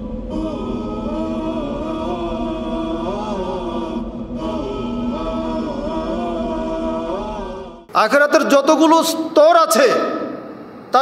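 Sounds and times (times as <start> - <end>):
unaccompanied vocal chant: 0.0 - 7.9.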